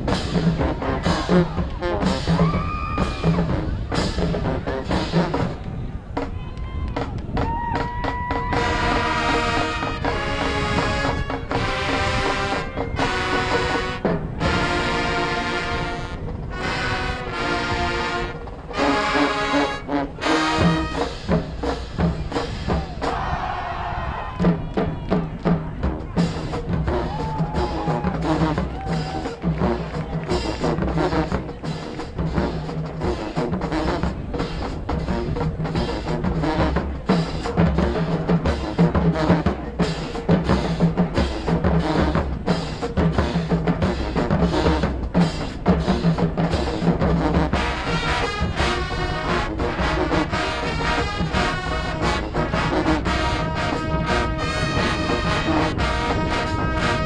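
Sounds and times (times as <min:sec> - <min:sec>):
held brass chords: 0:00.0 - 0:06.3, 0:07.8 - 0:23.2, 0:24.3 - 0:57.0
fast steady drum beat: 0:00.0 - 0:16.5, 0:20.1 - 0:23.5, 0:24.3 - 0:57.0
marching band playing: 0:00.0 - 0:57.0.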